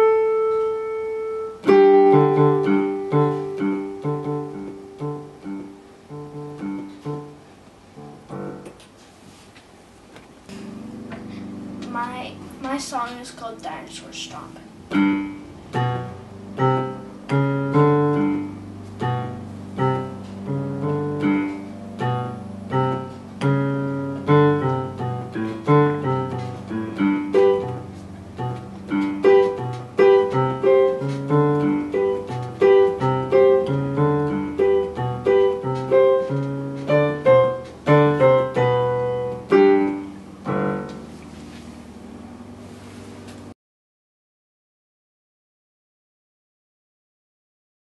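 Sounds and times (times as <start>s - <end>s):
simple digital piano piece: 0.0s - 8.9s, 10.4s - 43.6s.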